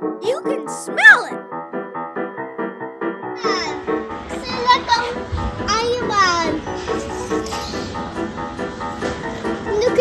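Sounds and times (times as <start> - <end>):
light background music: 0.0 - 10.0
child vocalising excitedly: 0.2 - 1.4.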